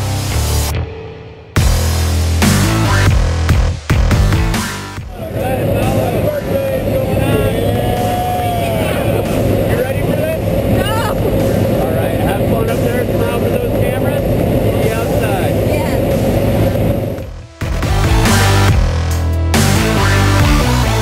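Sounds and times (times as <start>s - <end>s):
plane engine and propeller droning: 5.0s - 19.0s
people's voices: 5.1s - 17.3s.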